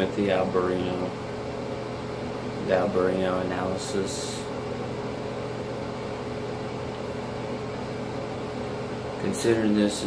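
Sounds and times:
faint constant whine: 0.0s - 10.0s.

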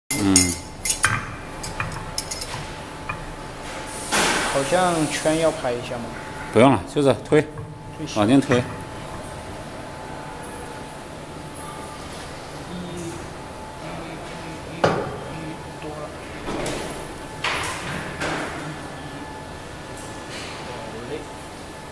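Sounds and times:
metal valve clinking on steel table: 0.1s - 3.2s
metal jaws knocking and scraping: 0.1s - 3.3s.

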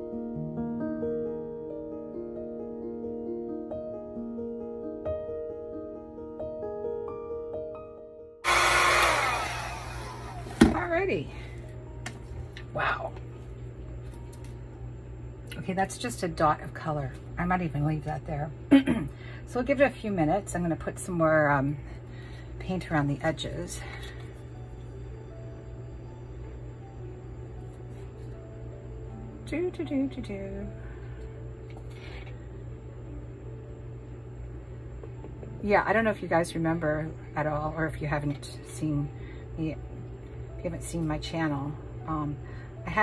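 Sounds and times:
soft background music: 0.0s - 8.4s, 9.8s - 21.9s, 22.6s - 43.0s
electric fan blowing: 8.4s - 43.0s
low motor hum: 8.5s - 18.7s.

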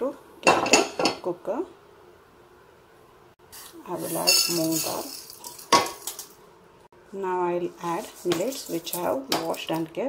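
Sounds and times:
grains rattling into a pot: 3.6s - 6.4s, 8.1s - 9.8s.

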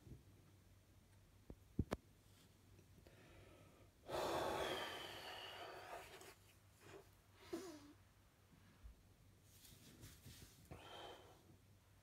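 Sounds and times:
man breathing heavily: 3.0s - 6.3s.

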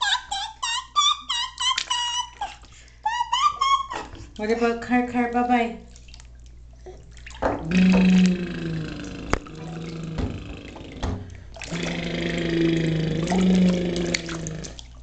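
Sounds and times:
steady low hum: 4.2s - 15.0s
bathwater splashing: 5.8s - 15.0s.

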